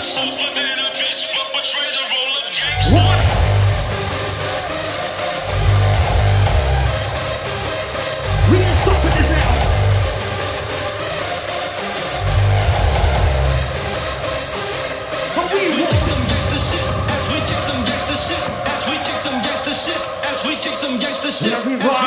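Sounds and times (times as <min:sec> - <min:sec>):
hard-dance electronic music: 0:00.0 - 0:22.0
gliding pitched sample: 0:02.7 - 0:15.3
heavy distorted kick and bass: 0:02.8 - 0:11.5, 0:12.1 - 0:15.3, 0:15.9 - 0:20.1.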